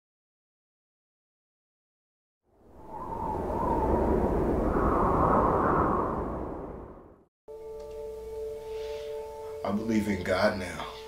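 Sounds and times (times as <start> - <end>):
rumbling whoosh: 2.6 - 7.3.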